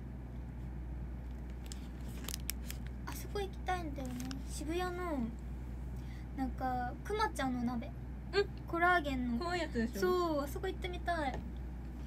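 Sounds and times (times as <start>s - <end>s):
steady low hum: 0.0s - 12.0s
handling crackles and clicks: 1.3s - 3.2s, 4.0s - 4.5s.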